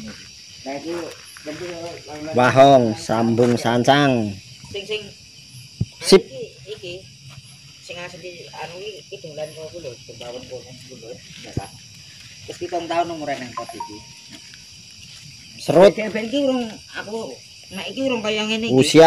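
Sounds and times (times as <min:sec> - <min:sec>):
crickets chirring: 0:00.0 - 0:19.0.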